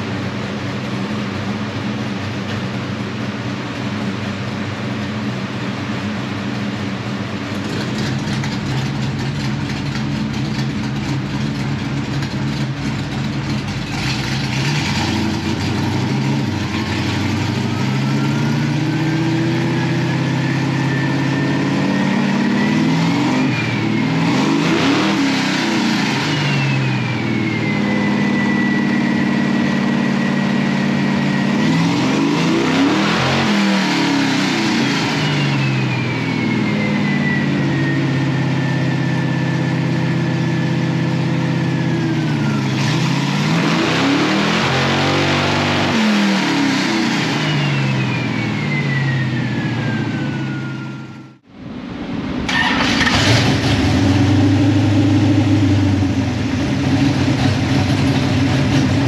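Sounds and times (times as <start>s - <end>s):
engine revving on dyno: 5.4s - 59.0s
whine rising in pitch: 7.5s - 52.5s.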